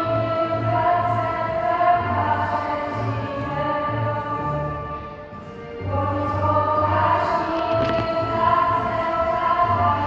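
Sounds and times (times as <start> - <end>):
pulsing bass accompaniment: 0.0 - 10.0
group of voices singing: 5.9 - 10.0.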